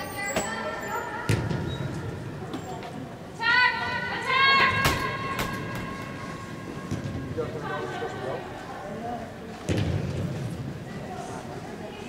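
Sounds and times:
voices calling out echoing: 0.0 - 9.7.

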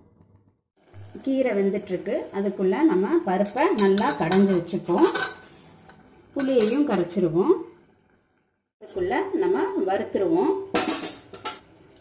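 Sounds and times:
metal ladle scraping a pot: 3.5 - 6.0.

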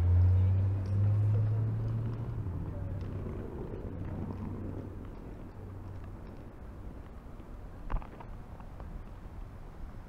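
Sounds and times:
passing vehicle engine hum: 0.0 - 10.0
steady road noise: 0.0 - 10.0.

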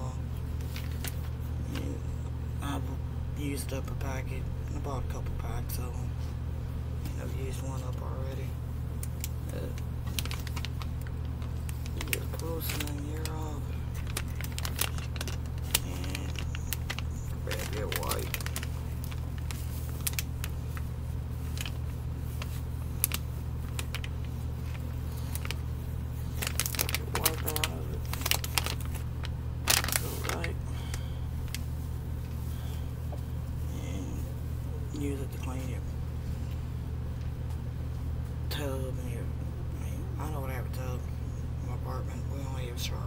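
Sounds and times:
steady low hum: 0.0 - 43.0
plastic pack crinkling: 0.6 - 1.3, 9.0 - 31.8.

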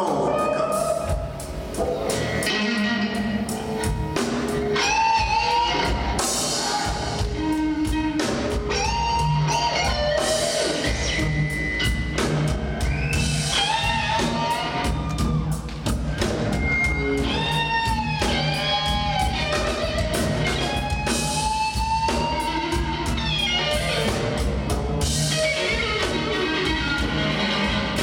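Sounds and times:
drum kit keeping time: 0.0 - 28.0
electric blues guitar solo: 1.9 - 28.0.

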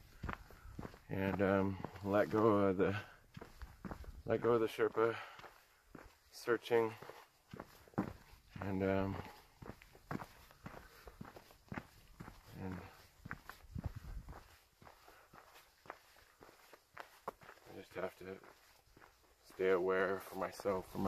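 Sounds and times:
footsteps on dirt trail: 0.0 - 21.0.

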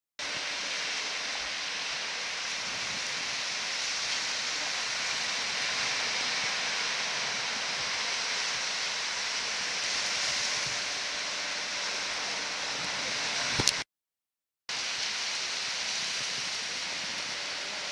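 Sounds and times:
surf breaking on sandy beach: 0.2 - 13.8, 14.7 - 17.9.

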